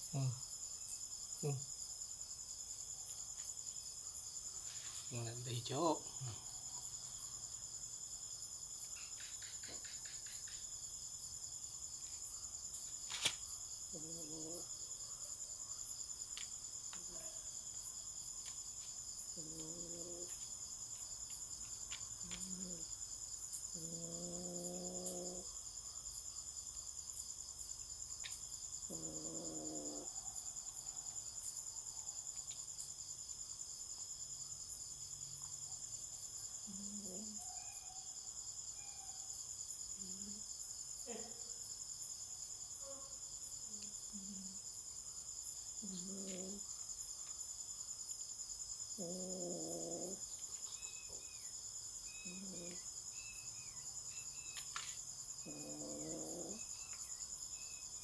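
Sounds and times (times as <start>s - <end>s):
crickets chirping: 0.0s - 58.0s.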